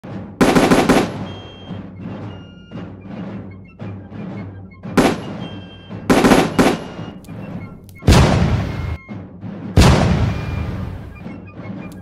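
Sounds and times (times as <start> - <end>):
musket volley: 4.9 - 9.0, 9.8 - 11.4.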